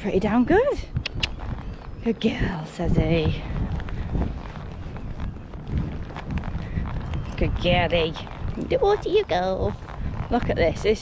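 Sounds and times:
hooves thudding on sand: 0.0 - 11.0
wind rumbling on microphone: 0.0 - 11.0.

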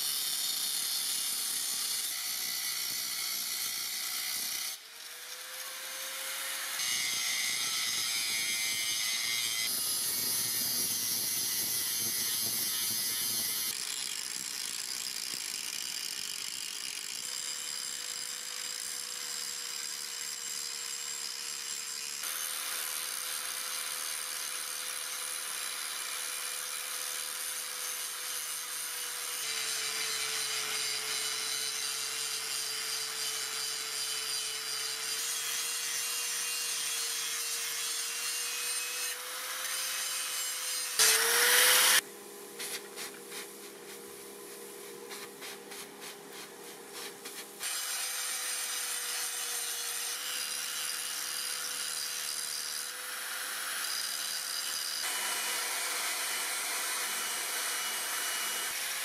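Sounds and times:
angle grinder grinding metal: 0.0 - 42.0, 45.0 - 59.0.

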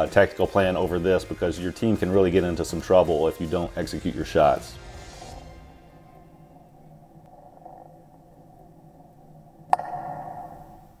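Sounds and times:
soft steady hum: 4.1 - 11.0
ringing tone: 5.8 - 11.0.

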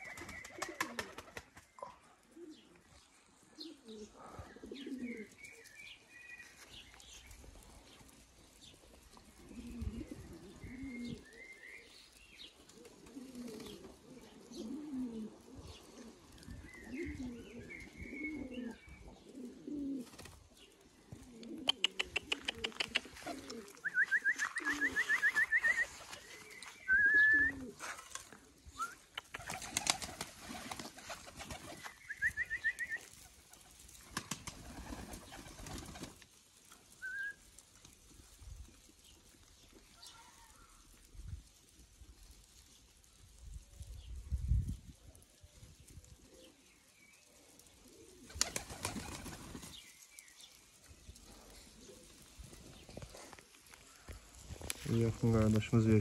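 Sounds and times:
pigeons cooing: 0.0 - 36.2, 45.6 - 55.9
fast sharp ticks: 21.6 - 23.2, 29.2 - 30.3.

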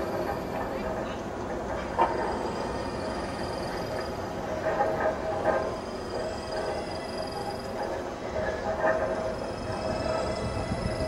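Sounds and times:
noisy experimental drone: 0.0 - 11.0.

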